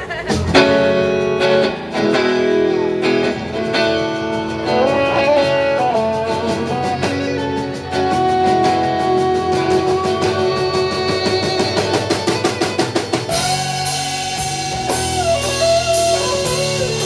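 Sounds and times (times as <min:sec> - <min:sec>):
live band with guitars and fiddle: 0:00.0 - 0:17.0.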